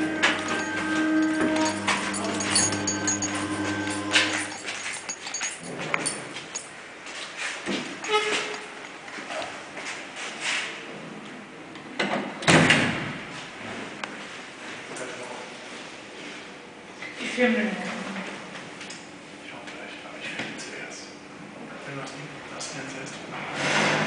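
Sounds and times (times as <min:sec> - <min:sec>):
lift machine hum: 0:00.0 - 0:06.7
door shutting with a thud: 0:12.1 - 0:13.2.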